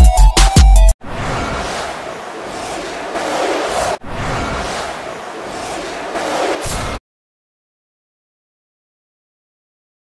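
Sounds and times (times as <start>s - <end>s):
noisy rushing swell: 1.0s - 7.0s.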